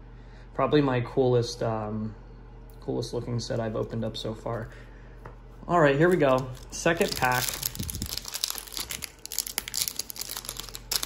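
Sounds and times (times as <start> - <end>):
foil pack crinkling: 6.0 - 11.0.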